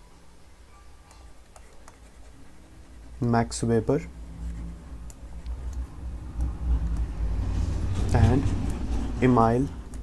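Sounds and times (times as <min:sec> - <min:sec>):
low steady rumble: 0:02.0 - 0:10.0.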